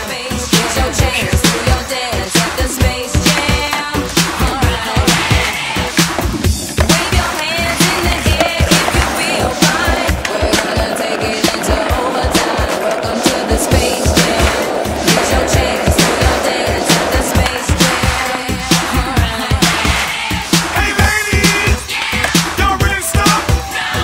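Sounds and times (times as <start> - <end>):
skateboard clacks: 0.0 - 23.7
loud music with steady beat: 0.0 - 24.0
skateboard wheels rolling on asphalt: 0.0 - 24.0.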